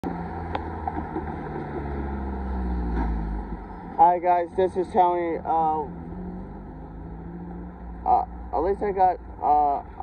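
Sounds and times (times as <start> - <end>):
cars and trucks driving past: 0.0 - 10.0.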